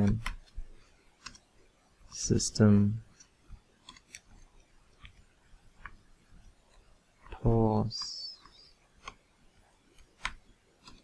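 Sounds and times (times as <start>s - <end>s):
faint keyboard typing: 0.0s - 11.0s.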